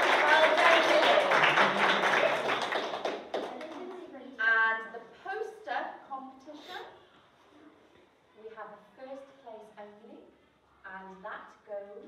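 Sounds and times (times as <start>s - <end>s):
children applauding: 0.0s - 4.0s.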